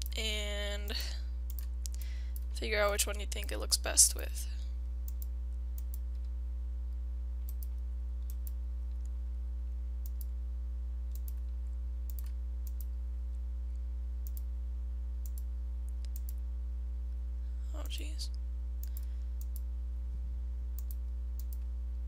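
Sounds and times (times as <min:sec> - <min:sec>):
low electrical hum: 0:00.0 - 0:22.0
computer mouse clicking: 0:05.1 - 0:06.0, 0:07.5 - 0:08.6, 0:11.1 - 0:11.4, 0:12.1 - 0:12.9, 0:15.2 - 0:16.4, 0:20.8 - 0:21.7.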